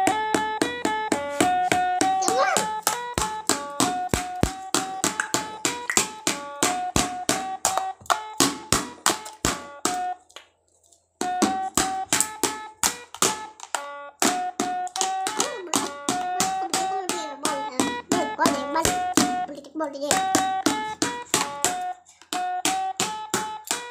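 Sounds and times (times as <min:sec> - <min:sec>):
sticks tapping on toy drum: 0:00.0 - 0:10.2, 0:11.2 - 0:23.9
electronic toy tune: 0:00.0 - 0:10.3, 0:11.2 - 0:23.9.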